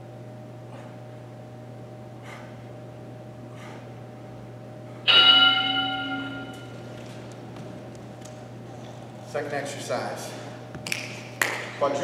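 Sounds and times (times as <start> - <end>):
timer bell chime: 5.1 - 6.7.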